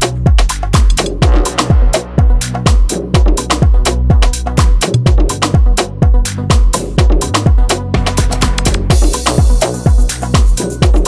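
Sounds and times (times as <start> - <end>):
deep house music: 0.0 - 11.0.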